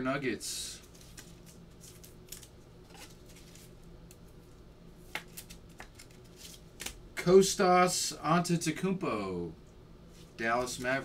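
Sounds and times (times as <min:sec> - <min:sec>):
cards clicking and rustling: 0:00.8 - 0:04.2, 0:05.0 - 0:07.0.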